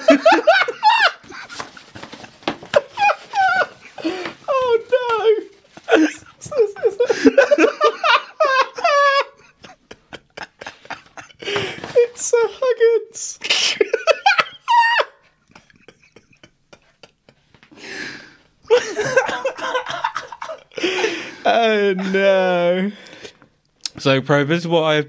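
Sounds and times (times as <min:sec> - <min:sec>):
people laughing hard: 0:00.0 - 0:12.8, 0:13.4 - 0:17.5, 0:18.6 - 0:22.3.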